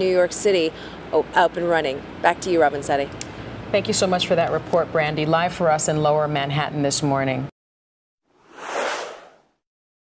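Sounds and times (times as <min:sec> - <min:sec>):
whoosh sound effect: 0:08.4 - 0:09.6.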